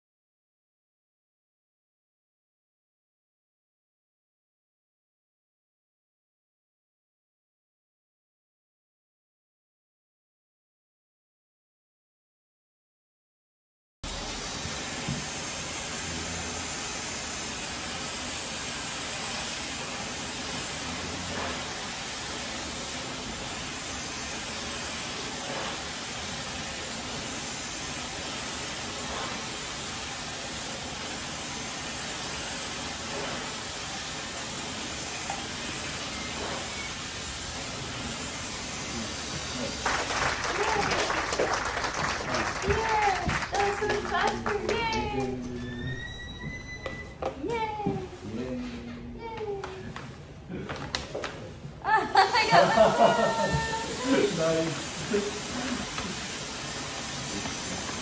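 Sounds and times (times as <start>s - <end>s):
hair dryer blowing: 14.1s - 17.9s, 52.4s - 58.0s
voices: 42.2s - 46.0s, 51.9s - 56.0s.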